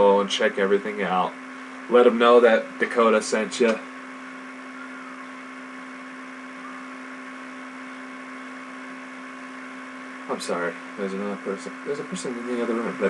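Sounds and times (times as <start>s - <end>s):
electrical hum: 0.0s - 13.0s.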